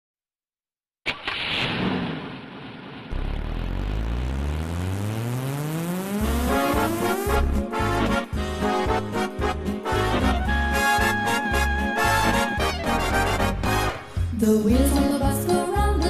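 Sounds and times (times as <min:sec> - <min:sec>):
sudden noisy burst: 0:01.1 - 0:08.2
cartoon engine revving: 0:03.1 - 0:08.3.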